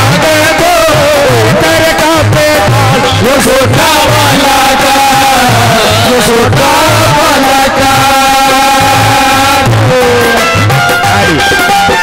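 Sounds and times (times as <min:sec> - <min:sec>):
low drum beat: 0:00.0 - 0:12.0.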